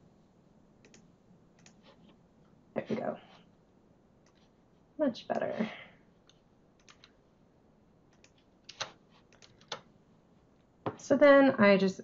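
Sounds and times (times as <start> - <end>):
keyboard and mouse clicks: 0.8 - 1.8, 4.2 - 4.5, 6.2 - 7.2, 8.1 - 9.9.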